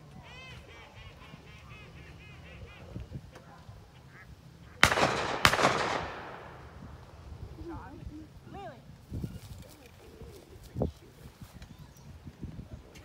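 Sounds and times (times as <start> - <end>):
waterfowl honking: 0.2 - 3.0
loud gunshots with echo: 4.8 - 6.9.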